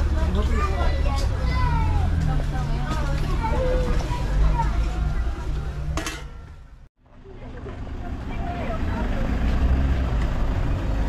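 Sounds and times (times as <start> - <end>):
indistinct chatter of voices: 0.0 - 9.8.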